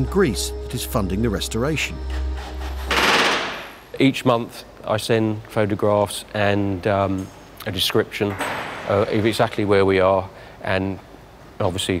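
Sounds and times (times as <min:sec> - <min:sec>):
pneumatic rivet gun hammering: 0:02.9 - 0:03.7.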